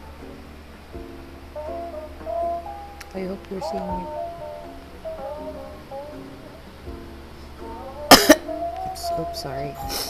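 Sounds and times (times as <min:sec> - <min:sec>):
soft background music: 0:00.0 - 0:10.0
woman coughing: 0:08.1 - 0:08.5.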